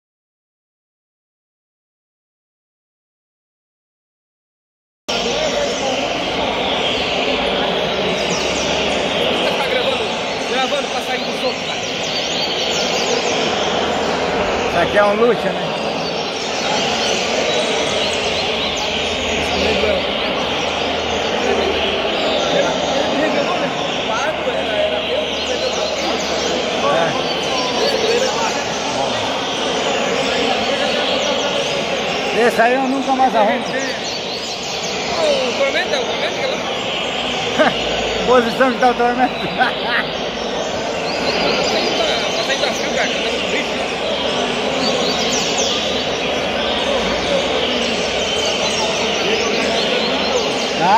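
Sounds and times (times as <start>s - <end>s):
murmur of crowded hall: 5.1s - 50.9s
songbirds chirping: 5.1s - 50.9s.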